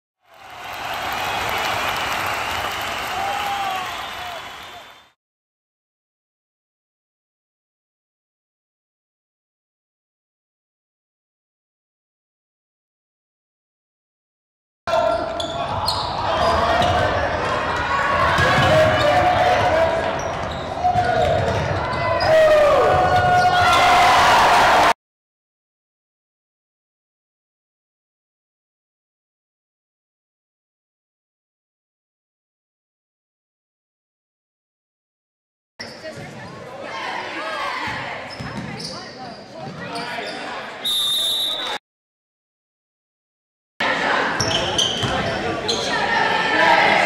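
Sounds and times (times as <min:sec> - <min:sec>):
sneaker squeaks: 0:14.9 - 0:17.0, 0:20.1 - 0:22.3, 0:35.8 - 0:36.6, 0:37.9 - 0:41.8, 0:44.4 - 0:46.1
voices of players and spectators: 0:14.9 - 0:24.9, 0:35.8 - 0:41.8, 0:43.8 - 0:47.0
voices echoing in gym: 0:35.8 - 0:40.9, 0:43.8 - 0:47.0.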